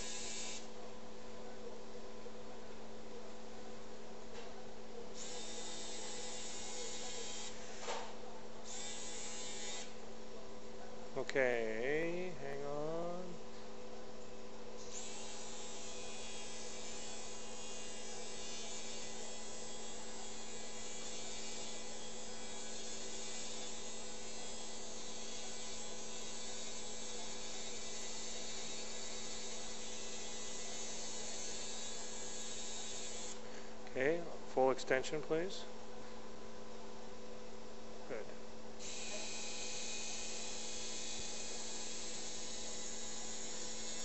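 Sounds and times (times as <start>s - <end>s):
high-pitched surgical burr whir: 0.0s - 0.7s, 5.2s - 7.9s, 8.7s - 10.0s, 14.8s - 33.4s, 38.8s - 44.0s
low electrical hum: 0.0s - 44.0s.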